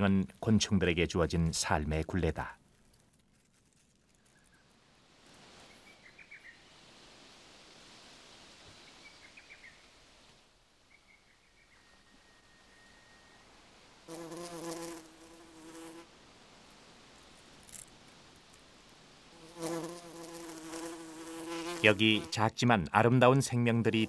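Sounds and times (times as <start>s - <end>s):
honeybee buzzing in flight: 14.1s - 16.1s, 19.4s - 22.3s.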